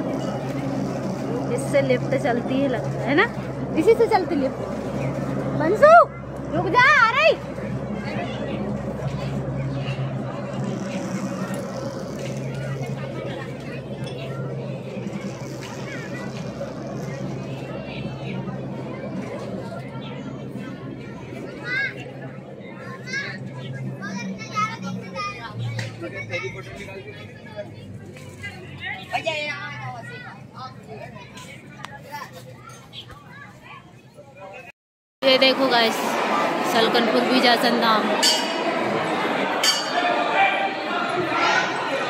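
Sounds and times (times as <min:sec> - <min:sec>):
machinery humming: 0:00.0 - 0:27.3
people chattering: 0:00.0 - 0:42.0
people talking: 0:00.0 - 0:42.0.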